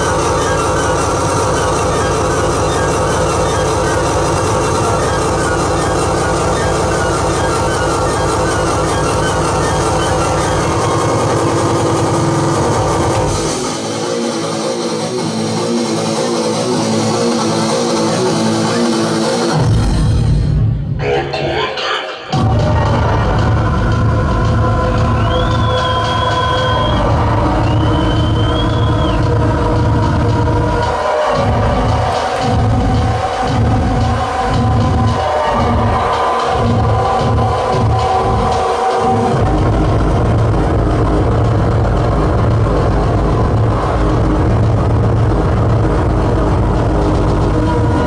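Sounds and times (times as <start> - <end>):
electronic music with heavy bass: 0.0 - 48.0.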